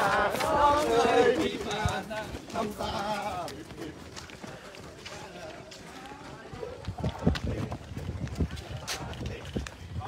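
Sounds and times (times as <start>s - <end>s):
jogging footsteps on pavement: 0.0s - 10.0s.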